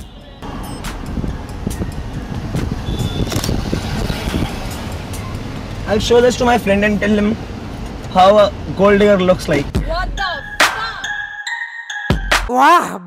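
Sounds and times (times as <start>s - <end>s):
city traffic heard from car: 0.0s - 10.6s
background music: 9.7s - 13.0s.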